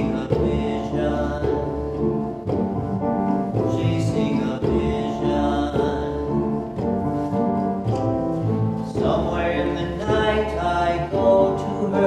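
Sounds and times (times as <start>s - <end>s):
man singing show tune: 0.0s - 2.1s, 3.6s - 6.8s, 8.8s - 12.0s.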